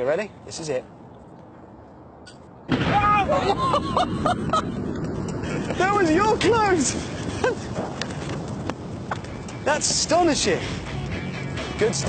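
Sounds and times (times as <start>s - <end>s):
outdoor background noise: 0.0s - 12.0s
man laughing: 3.2s - 5.4s, 7.2s - 7.8s.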